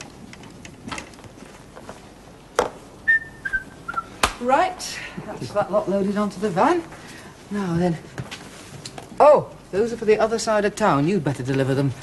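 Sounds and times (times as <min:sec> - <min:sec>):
descending whistle: 0:03.0 - 0:04.2.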